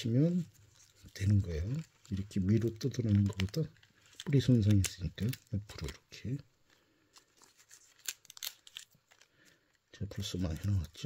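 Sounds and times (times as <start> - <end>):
leaves tearing and rustling: 7.1 - 9.3.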